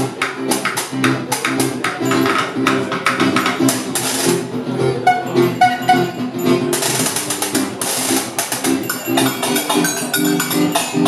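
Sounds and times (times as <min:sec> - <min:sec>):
sharp percussive clicks: 0:00.0 - 0:04.4, 0:06.7 - 0:11.0
acoustic guitar strumming: 0:00.0 - 0:11.0
short held notes: 0:04.8 - 0:09.7.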